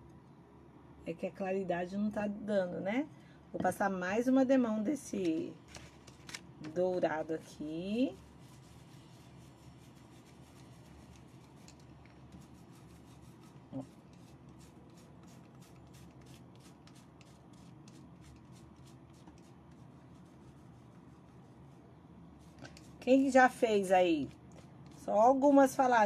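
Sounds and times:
paintbrush strokes on glass: 0:07.5 - 0:25.5.

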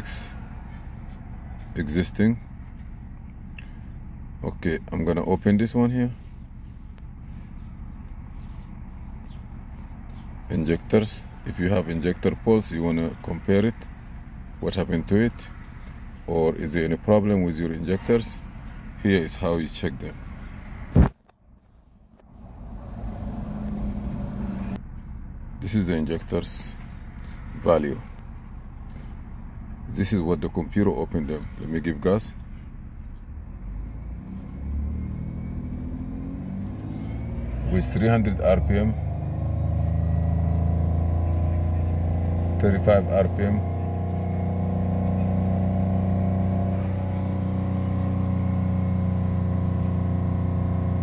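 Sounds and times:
car engine idling: 0:00.0 - 0:20.9, 0:21.6 - 0:33.9, 0:36.8 - 0:51.0
car engine revving: 0:22.2 - 0:24.8, 0:33.2 - 0:51.0.

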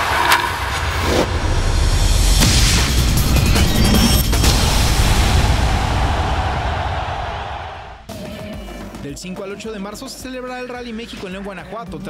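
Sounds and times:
rising sweep: 0:00.0 - 0:08.1
whooshing transition effects: 0:00.0 - 0:08.1.

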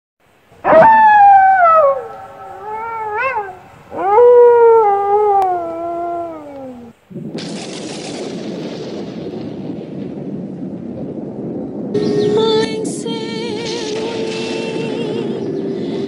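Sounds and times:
dog howling: 0:00.6 - 0:07.0
thunder crash: 0:07.1 - 0:15.4.

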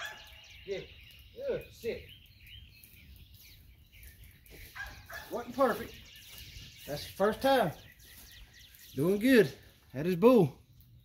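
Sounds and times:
faint bird chirps: 0:00.0 - 0:09.9
outdoor background noise: 0:00.0 - 0:11.0.

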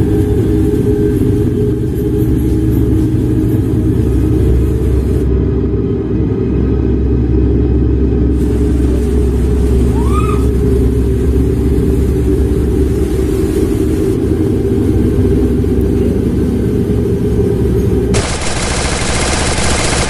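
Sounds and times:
low rumbling drone: 0:00.0 - 0:20.0.

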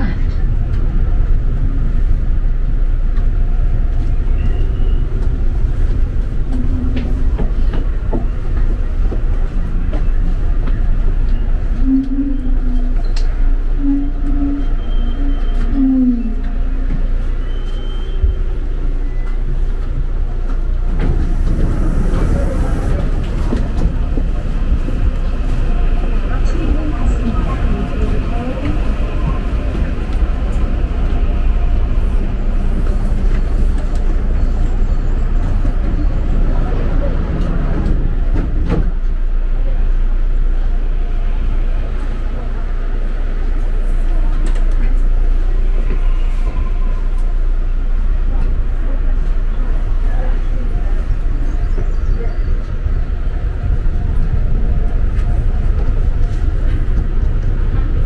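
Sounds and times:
electric train rumbling: 0:00.0 - 0:58.0.

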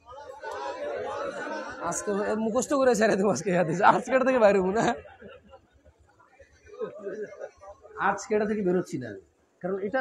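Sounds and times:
crowd murmur: 0:00.0 - 0:02.4
man speaking: 0:01.8 - 0:05.0.

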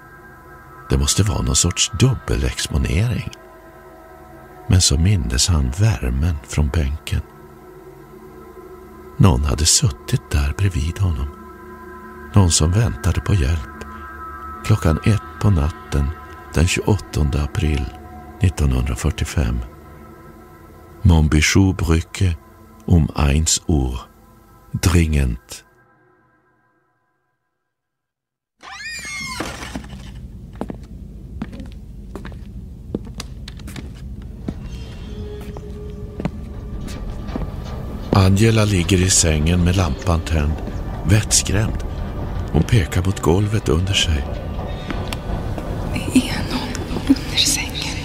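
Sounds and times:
steady low rumble: 0:29.9 - 0:48.0
breathy whispered voice: 0:45.9 - 0:48.0.

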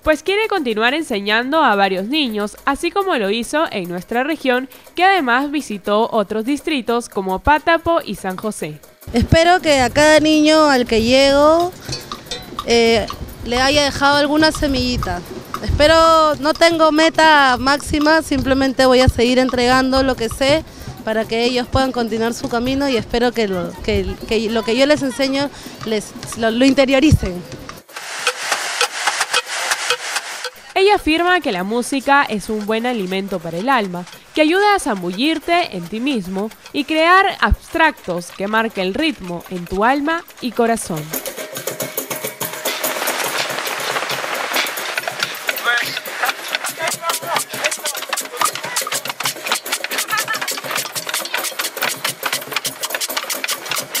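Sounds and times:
hand percussion strikes: 0:09.4 - 0:23.5, 0:24.1 - 0:43.8, 0:44.6 - 0:54.0
steady hissing wash: 0:27.8 - 0:31.3.

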